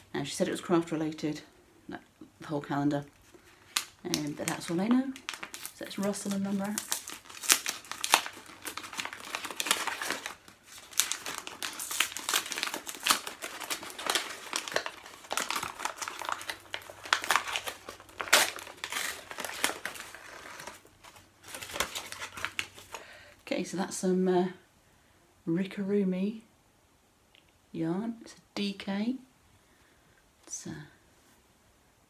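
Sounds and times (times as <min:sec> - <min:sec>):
wrapping paper crinkling and tearing: 0:03.0 - 0:23.2.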